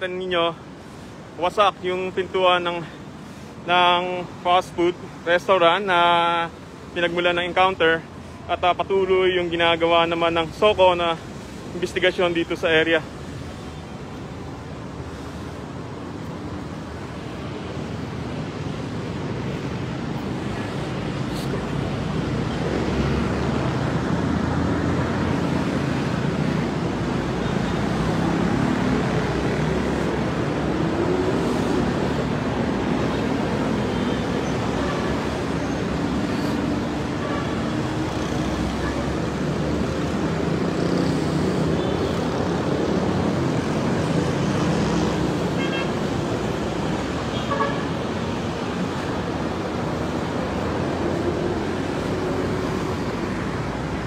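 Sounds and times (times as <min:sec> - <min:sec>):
city street traffic: 0:00.0 - 0:54.0.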